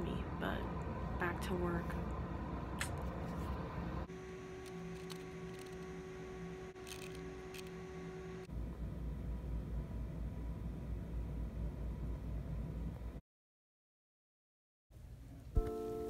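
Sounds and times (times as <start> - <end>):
lab equipment humming: 0.0 - 13.2.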